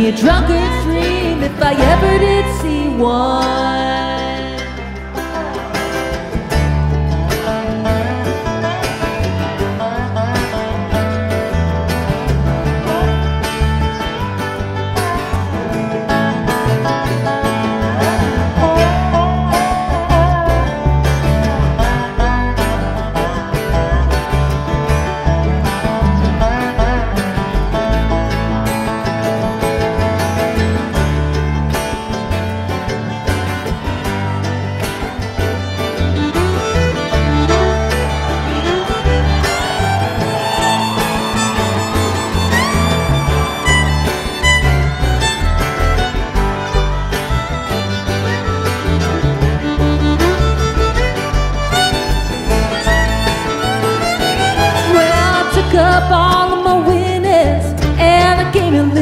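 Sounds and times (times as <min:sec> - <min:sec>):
acoustic guitar: 0:00.0 - 0:59.0
dobro: 0:00.0 - 0:59.0
fiddle: 0:00.0 - 0:59.0
steady bass line: 0:00.0 - 0:59.0.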